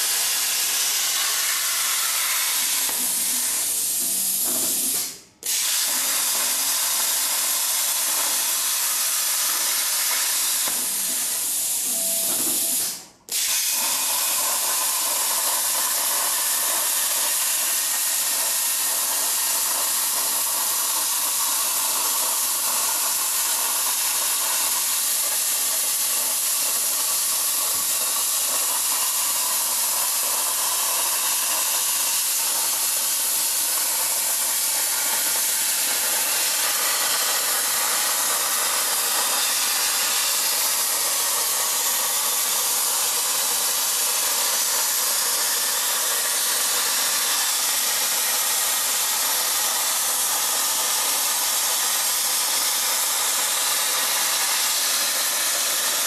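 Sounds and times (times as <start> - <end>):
plasma torch hissing: 0.0 - 56.0.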